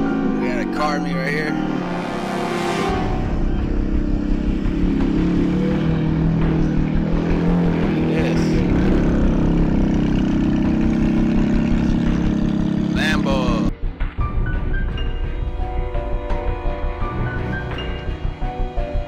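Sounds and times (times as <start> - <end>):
car engine running: 0.0 - 19.0.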